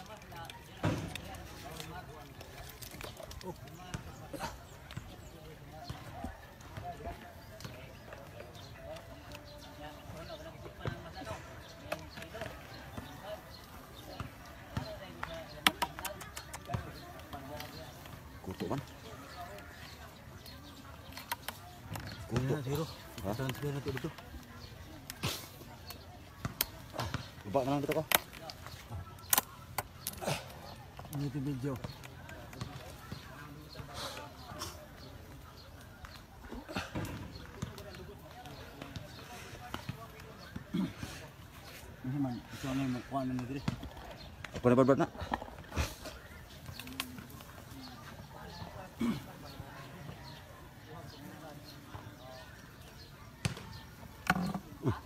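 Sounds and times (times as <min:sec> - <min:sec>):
voices talking in background: 0:00.0 - 0:55.0.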